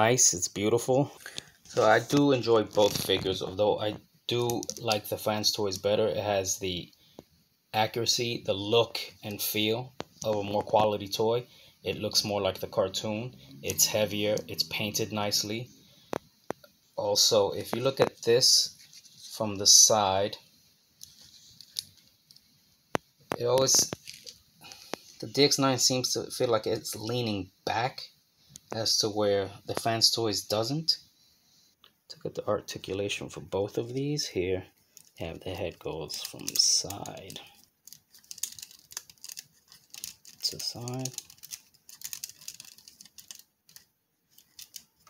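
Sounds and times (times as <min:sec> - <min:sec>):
plastic toy scuffs and clicks: 0:36.1 - 0:45.0.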